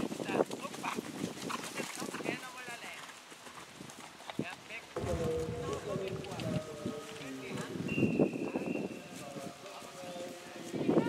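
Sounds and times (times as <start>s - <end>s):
hoofbeats on grass: 0.0s - 7.1s, 8.9s - 11.0s
sharp knock: 5.0s - 7.4s.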